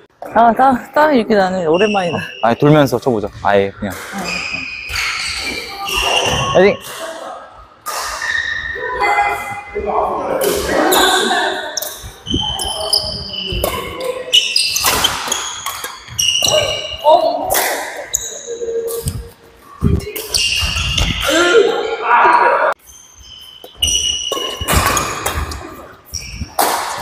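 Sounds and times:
voices: 0:03.2 - 0:22.8
footwork on court floor: 0:03.3 - 0:21.6, 0:22.8 - 0:27.0
rackets striking shuttlecock: 0:26.5 - 0:27.0.

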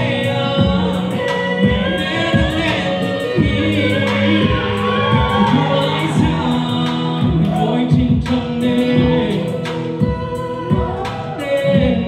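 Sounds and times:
amplified backing music: 0:00.0 - 0:12.0
two men singing: 0:00.0 - 0:12.0.

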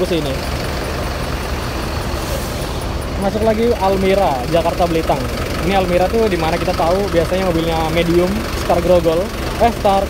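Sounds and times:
diesel engines idling: 0:00.0 - 0:10.0.

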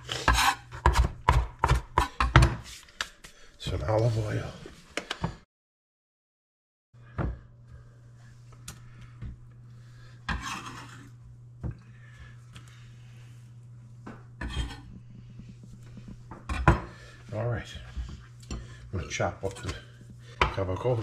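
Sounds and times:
low steady hum: 0:07.0 - 0:21.0
utensil scraping: 0:10.3 - 0:11.2.

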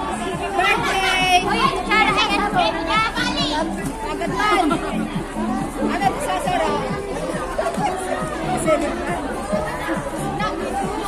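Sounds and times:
background music: 0:00.0 - 0:11.0
women chattering: 0:00.0 - 0:11.0.

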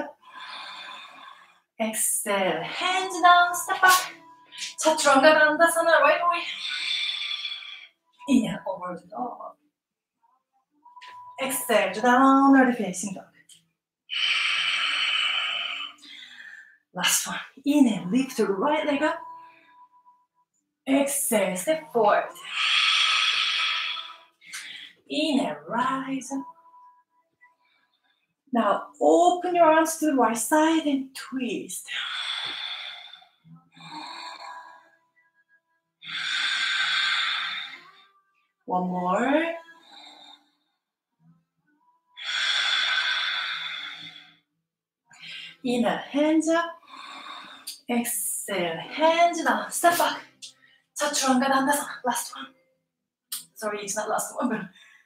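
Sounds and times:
woman breathing: 0:00.1 - 0:01.8, 0:06.4 - 0:08.1, 0:14.1 - 0:16.9, 0:22.4 - 0:25.1, 0:31.9 - 0:35.1, 0:36.0 - 0:38.2, 0:39.6 - 0:40.8, 0:42.2 - 0:44.5, 0:45.2 - 0:45.6, 0:46.8 - 0:47.8, 0:54.7 - 0:55.0
woman breathing out: 0:42.2 - 0:44.3.

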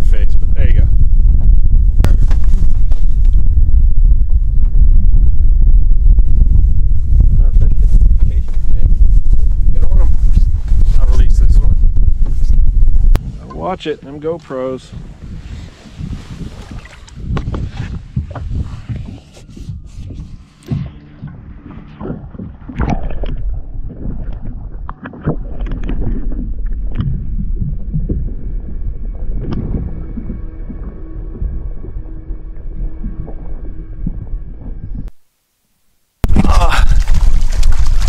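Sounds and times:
underwater rumble: 0:00.0 - 0:35.3, 0:35.9 - 0:38.0
faint steady hum: 0:00.0 - 0:38.0
water splashing: 0:15.8 - 0:19.1, 0:36.3 - 0:38.0.

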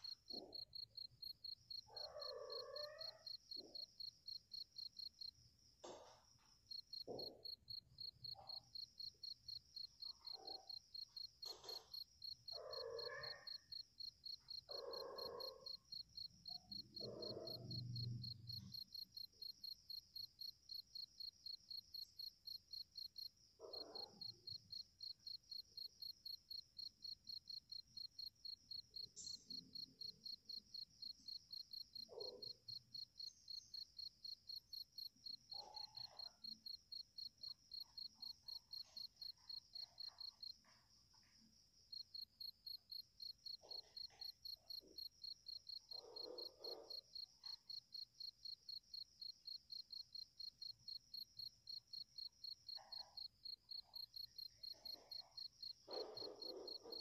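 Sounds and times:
cricket chirping: 0:00.0 - 0:57.0.

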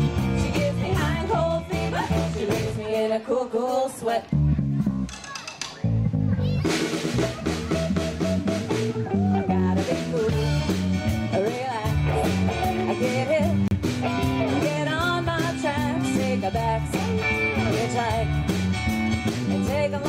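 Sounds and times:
bass guitar: 0:00.0 - 0:03.1, 0:04.0 - 0:20.0
drums and cymbals: 0:00.0 - 0:04.1, 0:04.8 - 0:20.0
electric guitars: 0:05.8 - 0:20.0.

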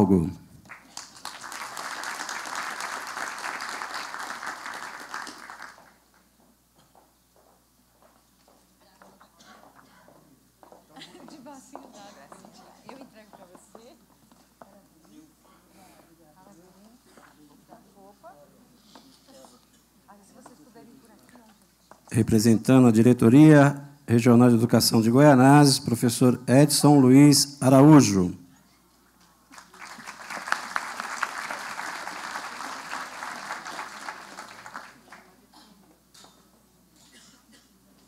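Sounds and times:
audience applause: 0:00.7 - 0:06.2, 0:29.5 - 0:35.4.

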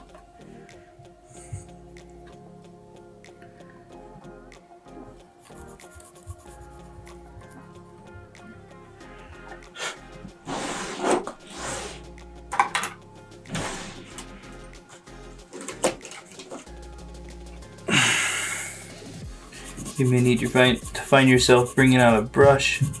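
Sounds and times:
background music: 0:00.0 - 0:23.0
cotton swab scrubbing circuit board: 0:05.5 - 0:07.0, 0:18.9 - 0:23.0.

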